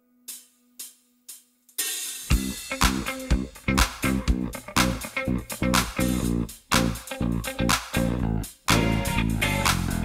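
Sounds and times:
drum kit and band playing: 0.3s - 10.0s
hi-hat taps: 0.3s - 10.0s.

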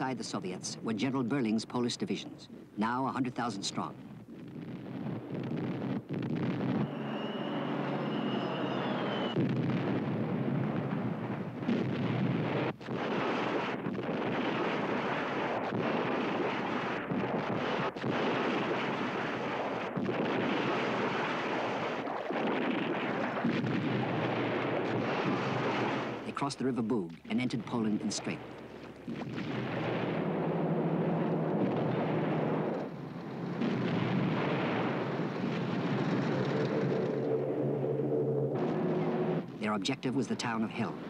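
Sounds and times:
shell explosions: 3.8s - 7.4s, 8.0s - 26.4s, 27.5s - 41.0s
artillery fire: 4.3s - 26.2s, 27.6s - 39.7s
faint whistling tone: 6.7s - 9.4s.

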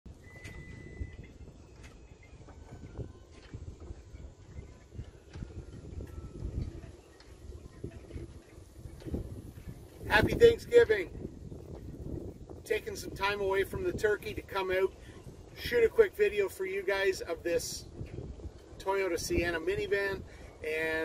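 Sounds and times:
wind rumbling on microphone: 0.1s - 21.0s.

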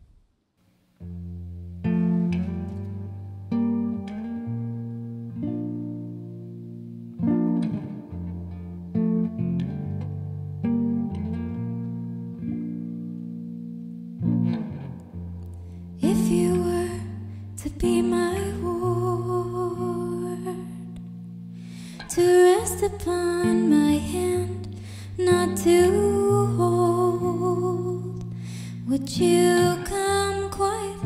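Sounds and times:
plucked guitar chords: 1.0s - 31.0s.

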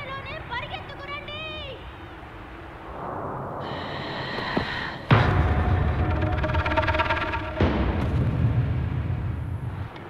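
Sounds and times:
low steady rumble: 0.0s - 10.0s
high-pitched wavering cry: 5.9s - 7.8s.

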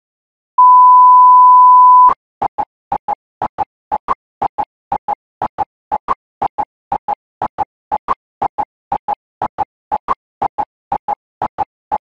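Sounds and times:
sine test tone: 0.6s - 2.1s.

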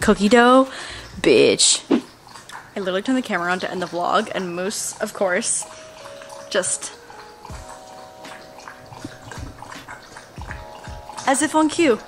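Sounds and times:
pet lapping water: 0.2s - 12.0s
low gulps: 7.5s - 11.2s.

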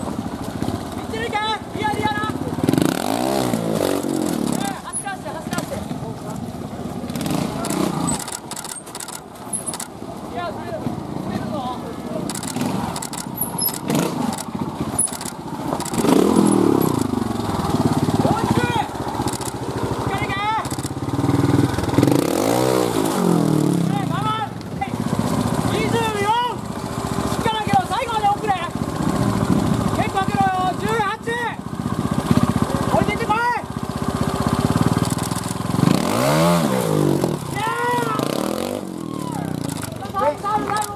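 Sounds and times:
motorcycle engine revving: 0.0s - 40.9s.

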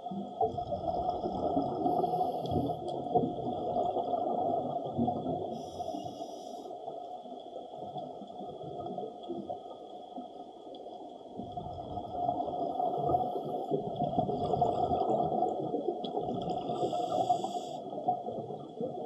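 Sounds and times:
bubbling exhaled bubbles: 0.3s - 5.6s, 11.4s - 19.0s
faint steady hum: 5.4s - 8.4s, 12.0s - 19.0s
regulator inhalation hiss: 5.5s - 6.7s, 16.8s - 17.8s.

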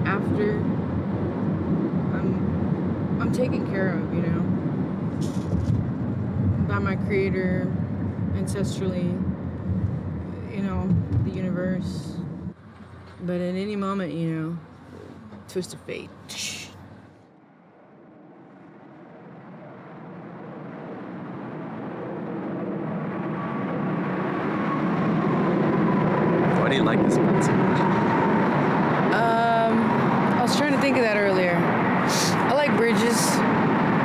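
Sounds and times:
road traffic on a bridge: 0.0s - 34.0s.

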